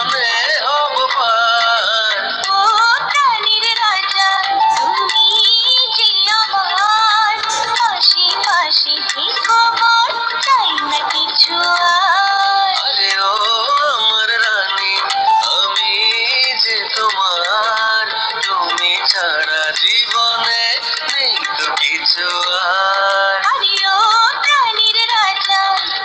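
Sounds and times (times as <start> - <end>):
wavering sung melody with backing: 0.0 - 26.0.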